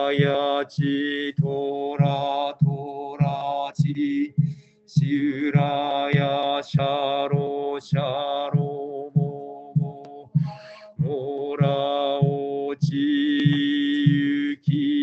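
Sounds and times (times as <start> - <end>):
monotone chanting: 0.0 - 15.0
wooden fish drum beats: 0.0 - 15.0.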